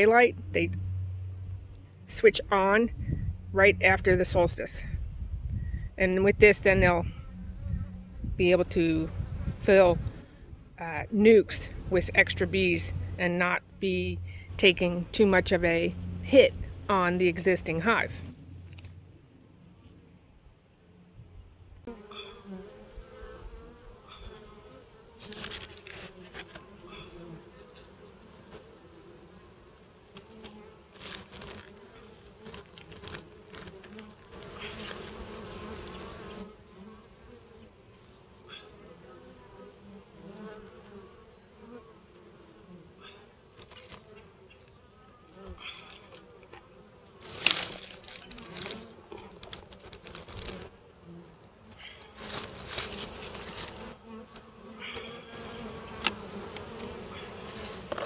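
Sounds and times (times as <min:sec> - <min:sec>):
bees buzzing: 0:06.0 - 0:19.8, 0:21.8 - 0:58.0
paper rustling: 0:49.4 - 0:50.7, 0:52.2 - 0:53.9.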